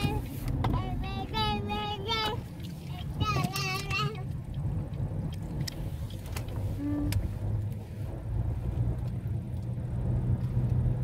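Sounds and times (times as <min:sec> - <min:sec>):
young child singing: 0:00.0 - 0:04.3
car road noise rumble: 0:00.0 - 0:11.0.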